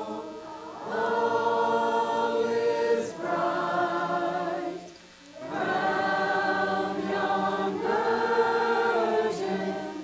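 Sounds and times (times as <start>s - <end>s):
choir singing long held notes: 0.0s - 10.0s.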